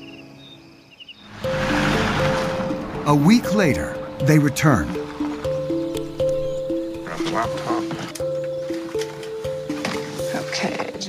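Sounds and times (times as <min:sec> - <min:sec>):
vehicle driving by on dirt road: 0:01.2 - 0:07.6
soundtrack music: 0:01.3 - 0:11.0.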